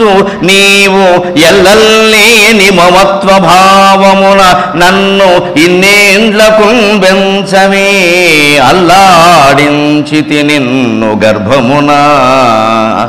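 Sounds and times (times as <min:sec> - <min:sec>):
man singing verse: 0:00.0 - 0:13.0.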